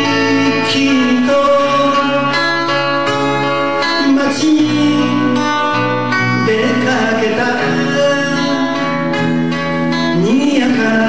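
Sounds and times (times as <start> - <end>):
acoustic guitars: 0.0 - 11.0
electric bass: 0.0 - 11.0
person singing: 0.0 - 11.0.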